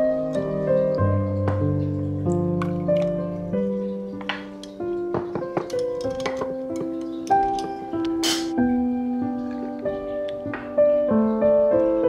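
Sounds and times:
gentle background music: 0.0s - 12.0s.

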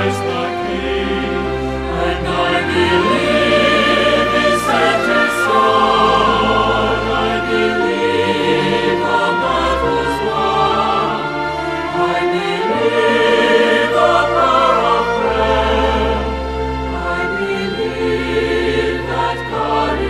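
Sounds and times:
instrumental accompaniment: 0.0s - 20.0s
mixed choir singing: 0.0s - 20.0s.

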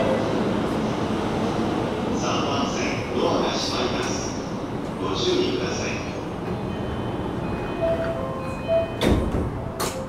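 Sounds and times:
train car rumble: 0.0s - 10.0s.

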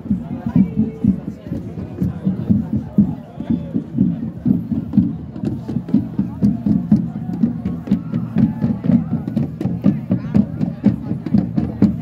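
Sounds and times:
faint crowd murmur: 0.0s - 12.0s.

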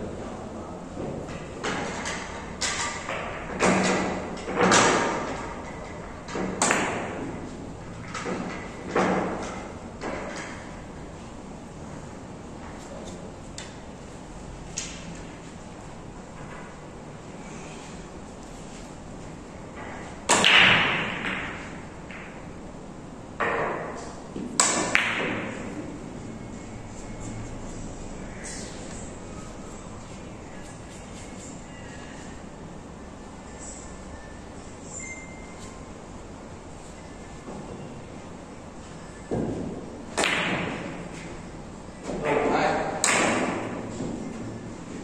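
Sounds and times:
billiard balls clacking: 23.4s - 26.0s.

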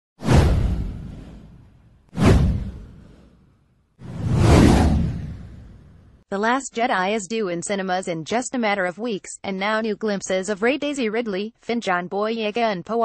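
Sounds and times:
whoosh sound effects: 0.2s - 3.4s, 4.0s - 6.1s.

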